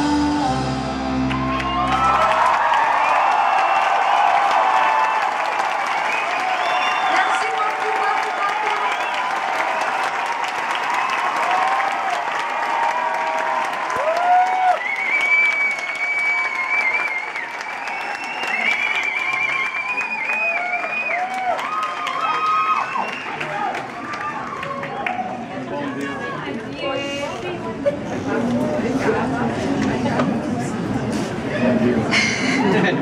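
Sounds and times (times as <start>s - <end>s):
audience applauding and cheering: 0.0s - 26.6s
crowd shouts: 1.3s - 15.0s
long whistles: 6.0s - 7.4s, 14.8s - 21.4s.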